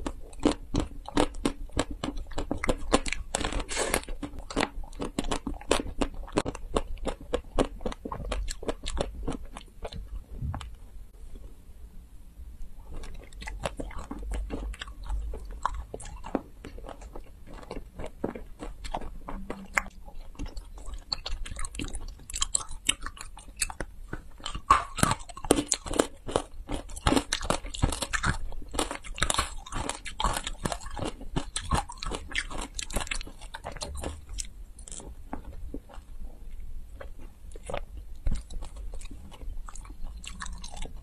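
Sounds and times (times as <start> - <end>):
chewing jelly candy: 0.0 - 11.5, 12.8 - 41.0.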